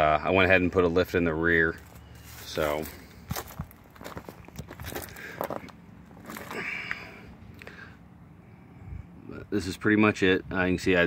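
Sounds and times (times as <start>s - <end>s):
footsteps on gravel: 1.6s - 7.2s.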